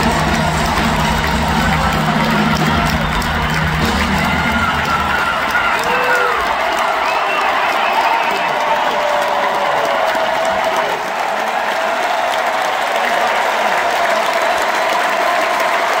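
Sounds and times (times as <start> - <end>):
crowd applauding and cheering: 0.0 - 16.0.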